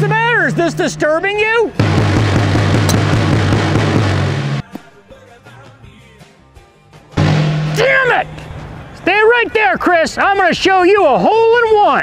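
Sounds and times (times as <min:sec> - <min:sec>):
music: 0:00.0 - 0:12.0
loud blast of noise: 0:01.8 - 0:04.6, 0:07.2 - 0:08.5
man shouting: 0:07.7 - 0:08.4, 0:09.0 - 0:12.0.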